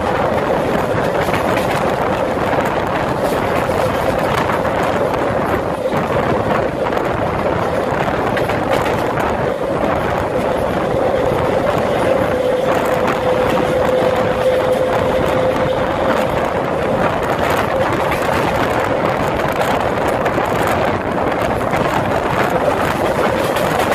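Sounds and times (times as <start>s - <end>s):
train wheels rushing on rail: 0.0s - 23.9s
wind buffeting microphone: 0.0s - 23.9s.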